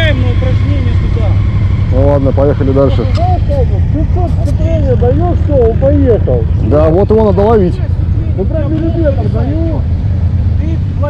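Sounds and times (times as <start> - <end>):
people talking: 0.0 - 9.8
steady low rumble: 0.0 - 10.8.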